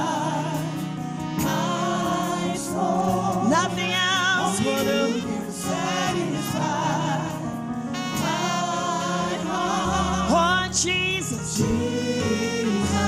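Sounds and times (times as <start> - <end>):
musical accompaniment: 0.0 - 13.0
woman singing: 3.2 - 5.5, 10.3 - 13.0.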